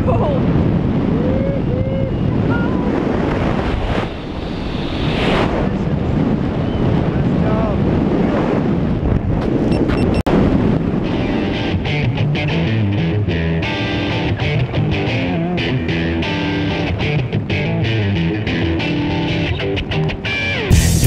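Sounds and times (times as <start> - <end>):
wind buffeting microphone: 0.0 - 20.3.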